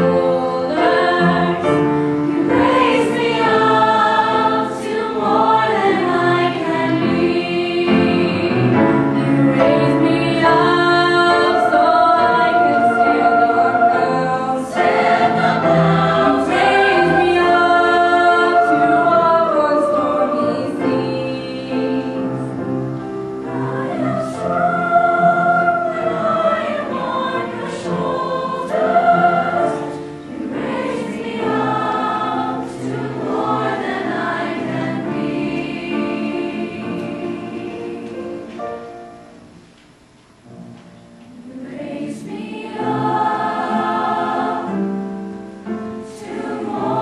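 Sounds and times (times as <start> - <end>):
mixed choir singing: 0.0 - 39.3, 41.3 - 47.0.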